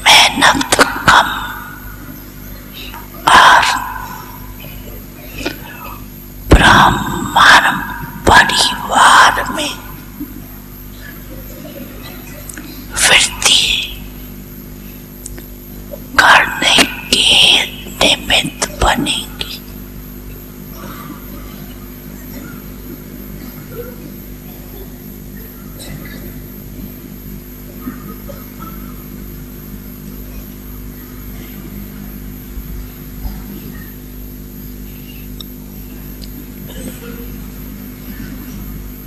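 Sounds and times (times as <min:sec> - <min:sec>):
sound system hiss: 0:00.0 - 0:19.8
low electrical hum: 0:00.0 - 0:39.0.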